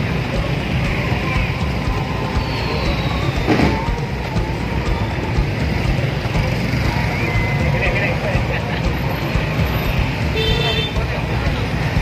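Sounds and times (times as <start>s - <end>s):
crowd voices: 0.0s - 12.0s
motorcycle engines rumbling: 0.0s - 12.0s.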